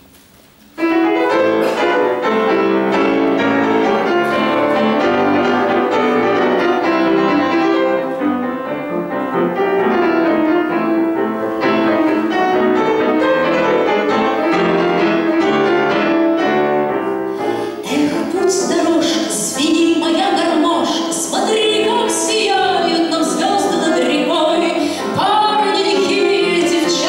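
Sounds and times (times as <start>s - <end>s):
grand piano playing: 0.5s - 27.0s.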